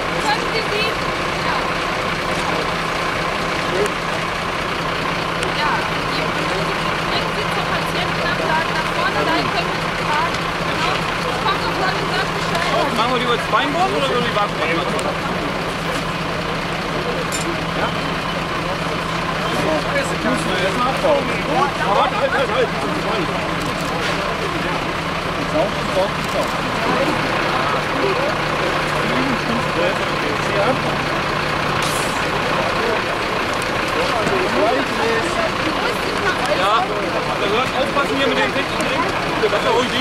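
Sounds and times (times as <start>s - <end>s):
chatter of many voices: 0.0s - 40.0s
engine idling hum: 0.0s - 40.0s.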